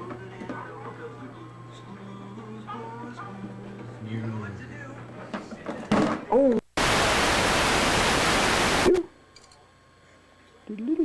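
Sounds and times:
videotape static hiss: 6.6s - 9.2s.

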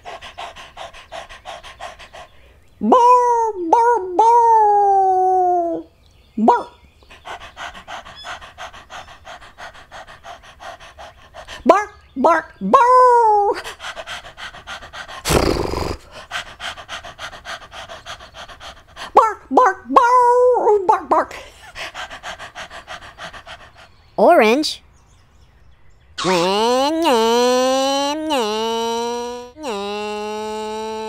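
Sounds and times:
dog huffing loudly: 0.0s - 2.6s, 7.0s - 11.8s, 13.6s - 19.2s, 21.5s - 24.0s
dog panting fast: 0.0s - 2.7s, 7.0s - 12.6s, 13.5s - 15.4s, 16.0s - 19.5s, 21.0s - 24.2s
dog whining and yipping: 7.6s - 9.1s.

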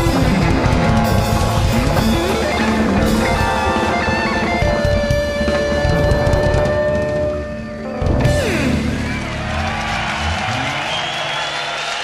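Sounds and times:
jazz fusion band playing: 0.0s - 9.9s
fast electric guitar lead: 0.0s - 11.5s.

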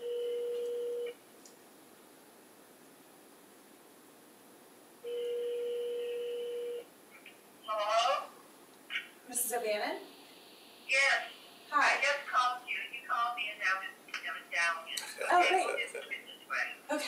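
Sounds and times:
telephone ring tone: 0.0s - 1.1s, 5.1s - 6.8s
low hiss: 0.0s - 17.0s.

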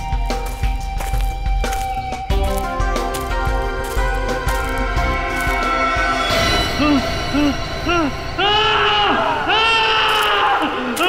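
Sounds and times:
drawn-out wailing cries: 4.8s - 11.0s.

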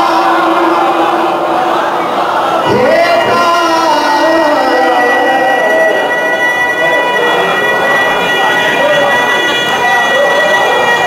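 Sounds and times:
crowd singing along: 0.0s - 11.0s
high-pitched tone: 0.0s - 11.0s
man singing through loudspeaker: 0.0s - 11.0s.

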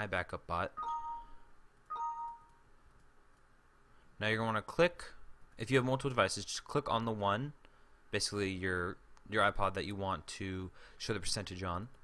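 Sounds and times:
two-note falling alert chime: 0.8s - 2.5s.

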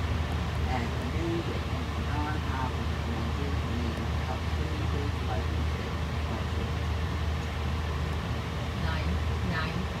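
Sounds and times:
jet engines rumbling overhead: 0.0s - 10.0s.

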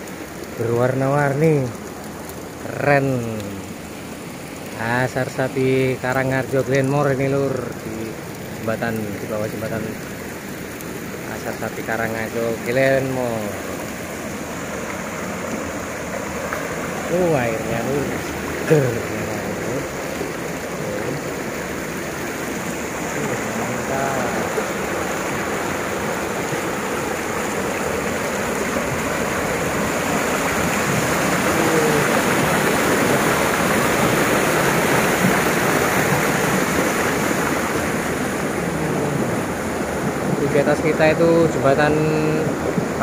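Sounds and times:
river rushing over stones: 0.0s - 43.0s.

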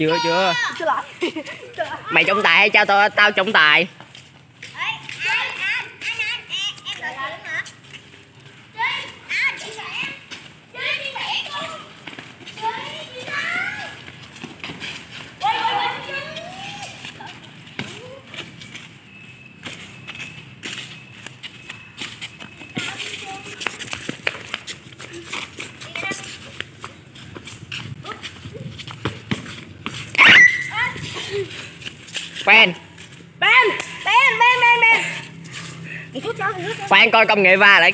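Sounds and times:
children talking and shouting: 0.0s - 37.9s.

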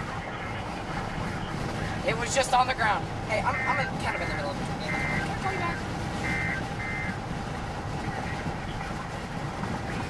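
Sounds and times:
road and engine noise: 0.0s - 10.0s.

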